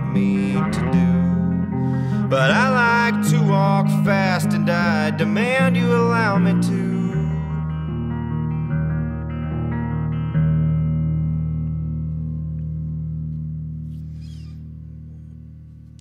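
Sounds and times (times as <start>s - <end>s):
electric guitar chords: 0.0s - 16.0s.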